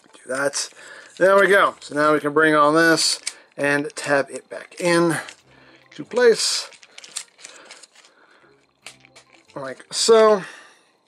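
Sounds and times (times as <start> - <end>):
plastic toy parts clicking: 3.2 - 3.4, 4.8 - 8.1, 8.8 - 9.6.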